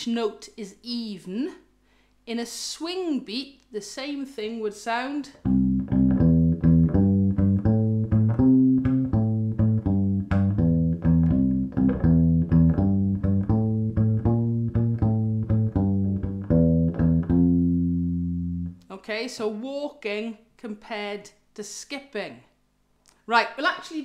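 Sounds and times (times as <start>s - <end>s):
plucked bass ukulele blues line: 5.4s - 18.8s.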